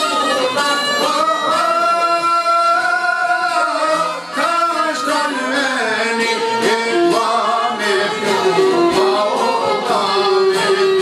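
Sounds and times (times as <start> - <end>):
man singing wavering melody: 0.0 - 11.0
violin: 0.0 - 11.0
plucked long-necked lute: 3.6 - 11.0.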